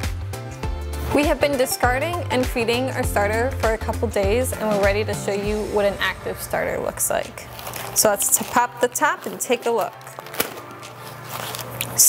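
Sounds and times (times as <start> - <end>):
paper coffee filter rustling: 7.3 - 12.0.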